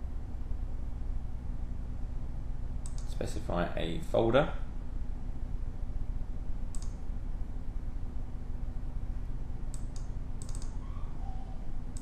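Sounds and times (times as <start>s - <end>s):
steady low hum: 0.0s - 12.0s
computer mouse click: 2.8s - 3.1s, 6.7s - 7.0s, 9.7s - 10.8s.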